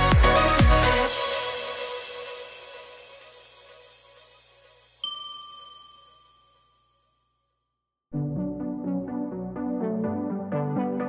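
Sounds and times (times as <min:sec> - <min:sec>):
bright bell-like chime: 0:05.0 - 0:07.6.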